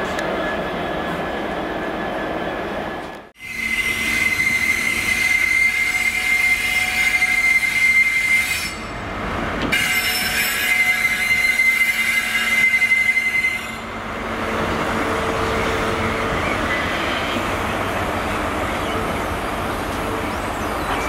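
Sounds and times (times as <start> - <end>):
train wheels squealing on rails: 3.4 - 13.9, 15.0 - 21.0.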